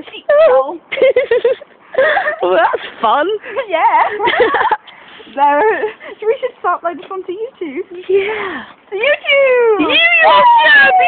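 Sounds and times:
girl squealing: 0:09.8 - 0:11.0.

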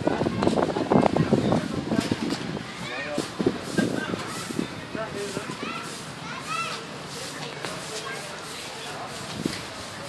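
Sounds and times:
chatter of voices: 0:00.0 - 0:10.0
high-pitched children's calls: 0:02.6 - 0:03.3, 0:04.0 - 0:09.2.

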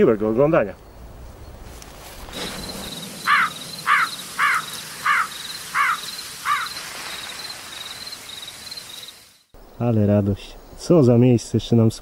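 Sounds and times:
faint cricket-like chirping: 0:00.1 - 0:12.0
rising and falling call: 0:02.3 - 0:09.3.

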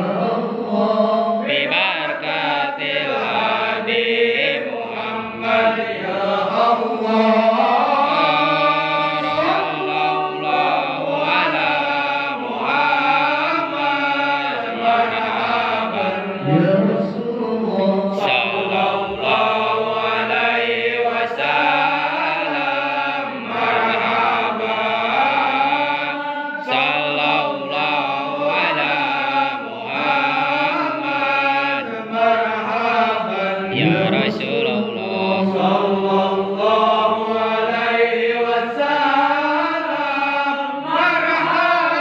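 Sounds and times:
men chanting devotional verses: 0:00.0 - 0:42.0.

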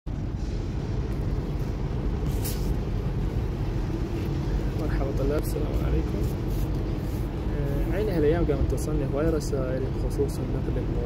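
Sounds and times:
outdoor street noise rumble: 0:00.1 - 0:11.0.

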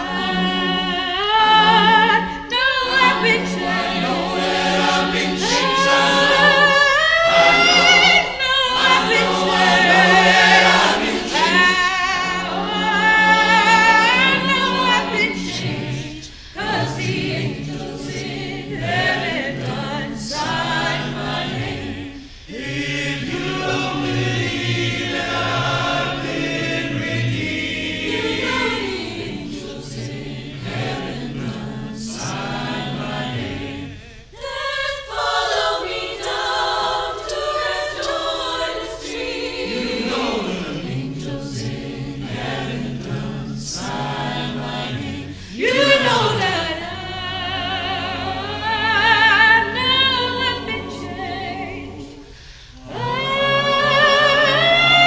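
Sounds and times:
mixed-voice choir singing: 0:00.0 - 0:55.0.

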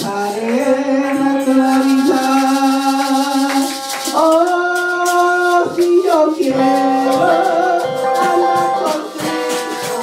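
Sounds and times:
live worship music: 0:00.0 - 0:10.0
maracas shaking: 0:00.0 - 0:10.0.

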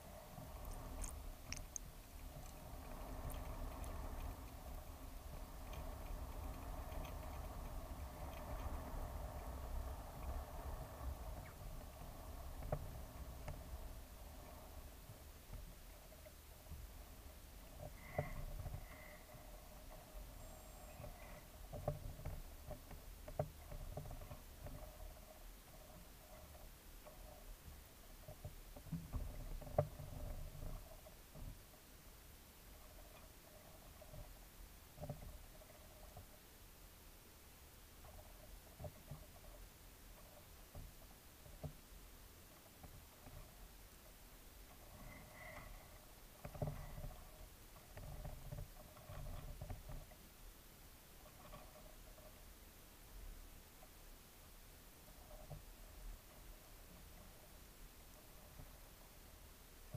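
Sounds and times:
underwater hum: 0:00.0 - 0:22.0
scattered clicks: 0:00.5 - 0:09.5.

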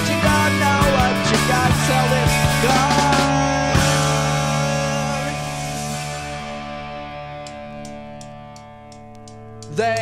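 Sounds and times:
electric guitar chord ringing: 0:00.0 - 0:09.6.

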